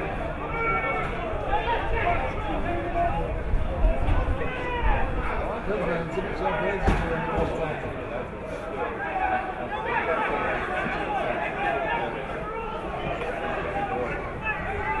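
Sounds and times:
spectators talking and calling out: 0.0 - 15.0.

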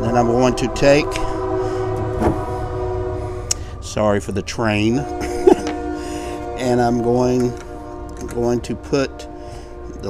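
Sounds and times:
train horn chord: 0.0 - 10.0.

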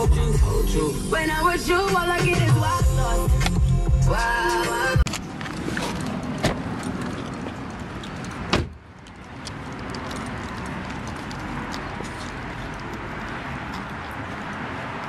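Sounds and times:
outdoor background noise: 0.0 - 15.0
car door slamming: 8.5 - 8.8.

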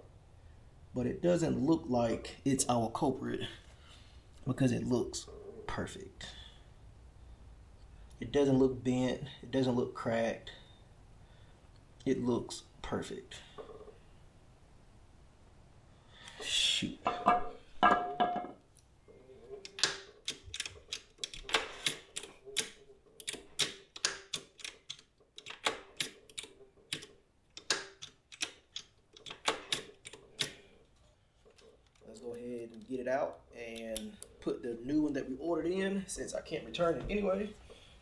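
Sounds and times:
sharp clicks of hand tools: 19.6 - 30.6.

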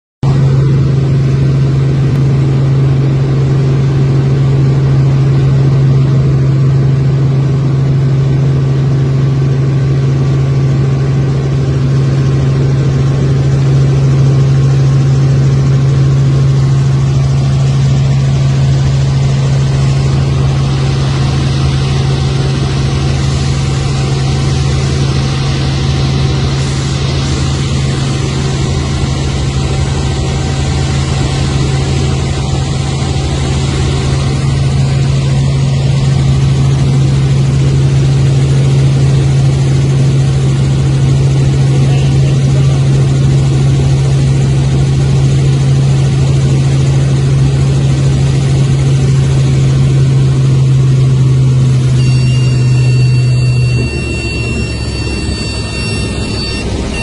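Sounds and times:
helicopter engine and rotors humming: 0.2 - 57.0.

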